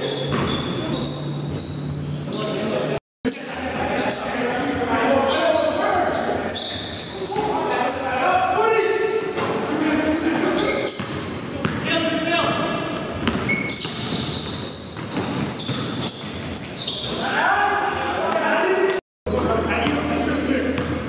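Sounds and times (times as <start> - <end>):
voices: 2.3 - 13.0, 16.9 - 20.9.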